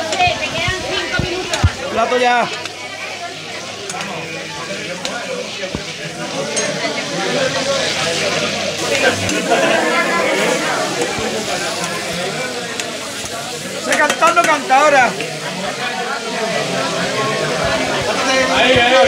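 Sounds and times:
meatballs sizzling in a frying pan: 0:00.1 - 0:19.0
background voices: 0:03.7 - 0:19.0.

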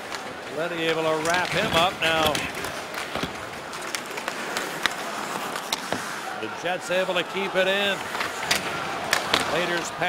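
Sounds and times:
hockey sticks and puck clacking: 0:00.0 - 0:10.0
skates scraping on ice: 0:00.0 - 0:10.0
crowd murmur: 0:01.1 - 0:10.0.

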